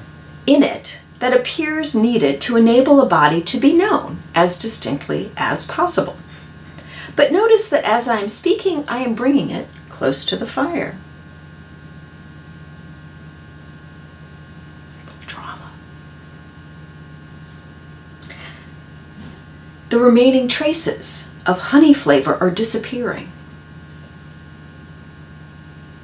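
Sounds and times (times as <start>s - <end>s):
low electrical hum: 0.0s - 26.0s.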